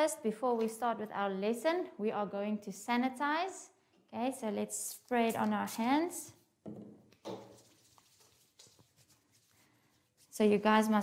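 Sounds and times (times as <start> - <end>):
hands rubbing sanitizer: 7.2 - 11.0.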